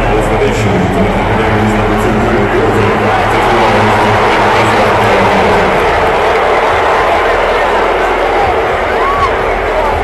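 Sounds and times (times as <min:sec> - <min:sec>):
arena crowd cheering: 0:00.0 - 0:10.0.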